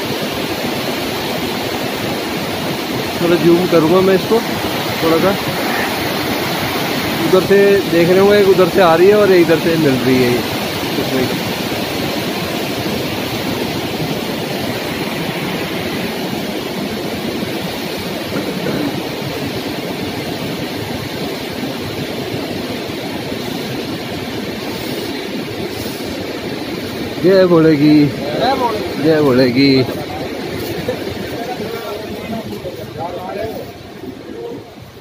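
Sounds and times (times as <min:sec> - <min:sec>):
river rushing over boulders: 0:00.0 - 0:35.0.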